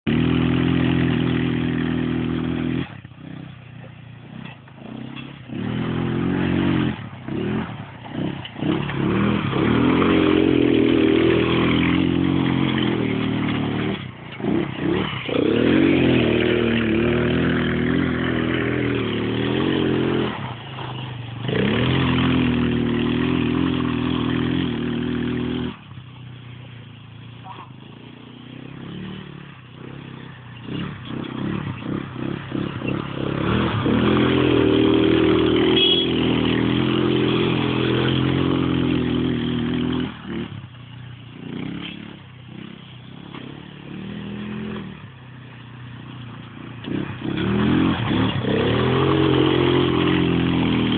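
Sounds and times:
quad bike engine revving: 0.0s - 50.9s.

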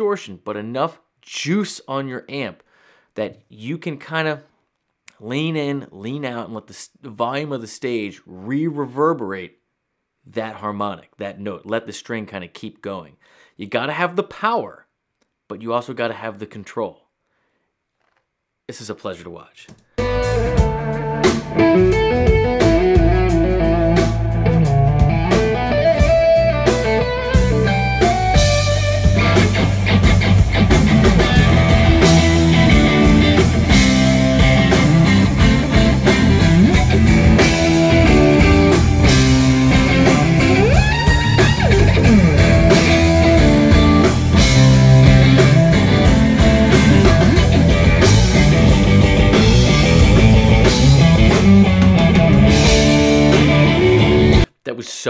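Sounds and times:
drums: 19.7s - 54.5s
bass guitar: 20.0s - 54.5s
electric guitar solo: 20.0s - 54.5s.

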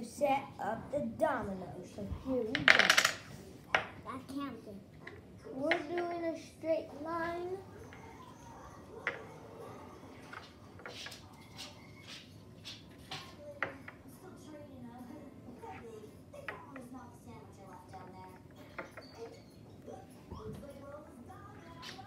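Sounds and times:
dominoes clicking on wooden table: 2.5s - 3.3s.

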